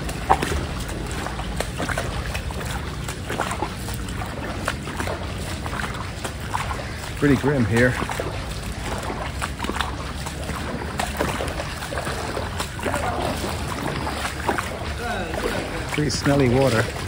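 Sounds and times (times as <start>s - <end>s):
footsteps wading through water: 0.0s - 17.0s
outdoor noise: 0.0s - 17.0s
water sloshing splashes: 0.0s - 17.0s.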